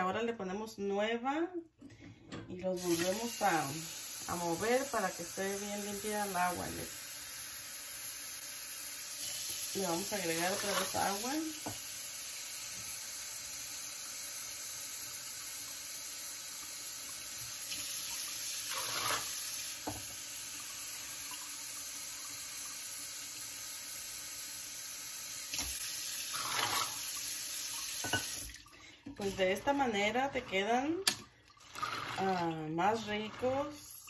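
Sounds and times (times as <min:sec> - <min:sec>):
tap water running into metal pot: 0:02.8 - 0:34.0.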